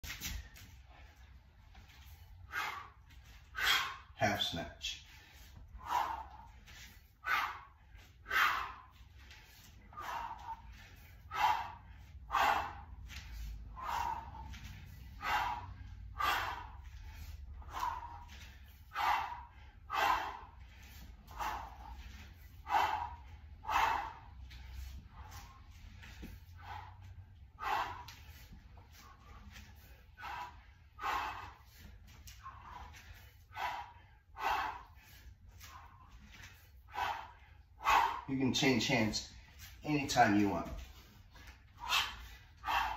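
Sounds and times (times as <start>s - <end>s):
man breathing forcefully: 0.0s - 42.9s.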